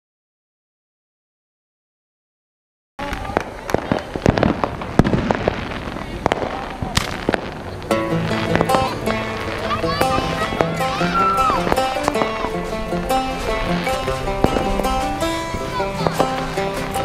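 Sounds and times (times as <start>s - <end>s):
fireworks pops and bangs: 3.0s - 17.0s
music with held notes: 7.2s - 17.0s.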